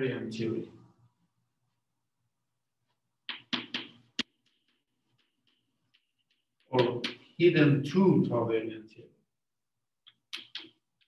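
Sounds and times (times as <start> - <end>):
chalk tap: 3.2 - 7.4, 10.0 - 11.0.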